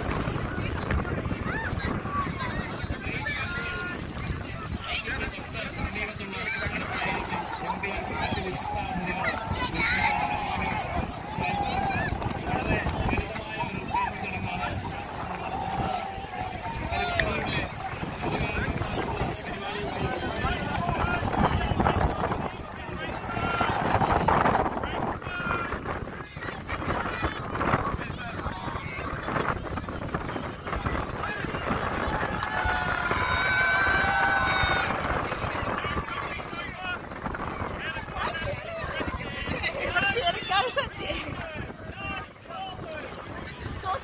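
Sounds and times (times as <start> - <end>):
chatter of many voices: 0.0 - 44.0
paddles splashing in water: 0.0 - 44.0.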